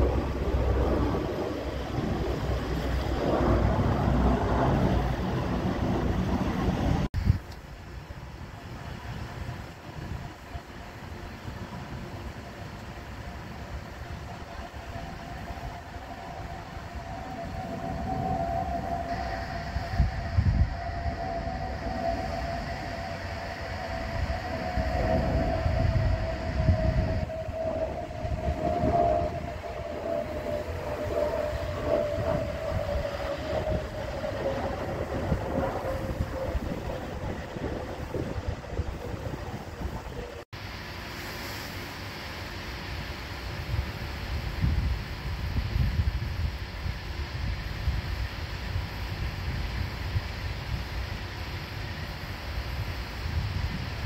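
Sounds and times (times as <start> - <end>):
wind buffeting microphone: 0.0 - 40.6, 43.4 - 54.0
jet engines passing overhead: 0.0 - 54.0.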